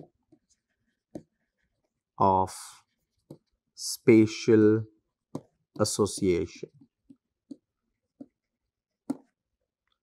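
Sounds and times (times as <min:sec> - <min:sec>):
stylus writing on pen tablet: 0:00.0 - 0:02.2, 0:02.8 - 0:03.8, 0:05.0 - 0:10.0.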